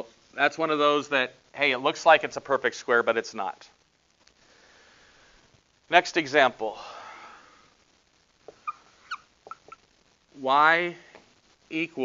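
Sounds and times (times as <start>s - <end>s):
marker squeaking on whiteboard: 8.4s - 9.9s.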